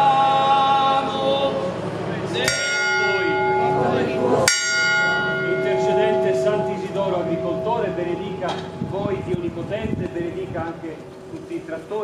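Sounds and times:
church bell tolling: 0:02.4 - 0:11.8.

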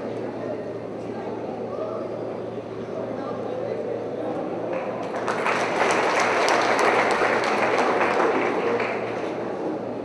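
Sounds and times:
audience clapping: 0:04.7 - 0:09.6.

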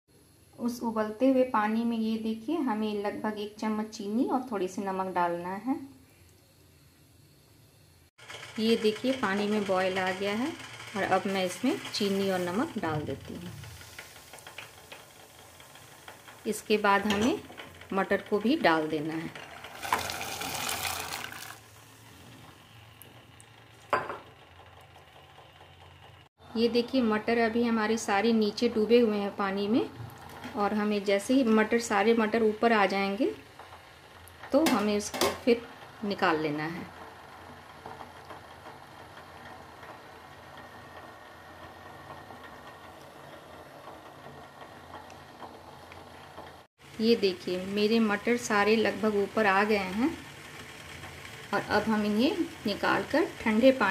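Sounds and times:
faint steady hiss: 0:00.1 - 0:08.1
gas burner hum: 0:00.1 - 0:53.9.

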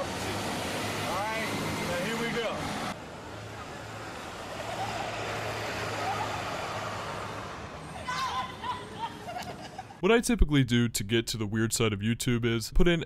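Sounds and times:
man speaking: 0:10.0 - 0:13.0.

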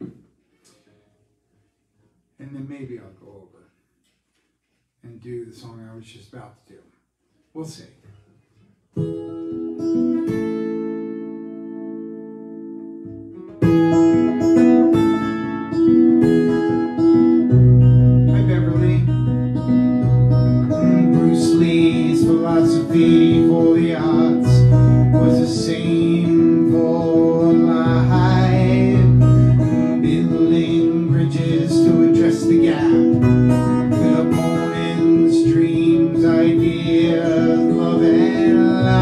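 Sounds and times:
acoustic guitar strumming: 0:08.9 - 0:39.0
man singing: 0:18.3 - 0:19.1, 0:20.9 - 0:39.0.

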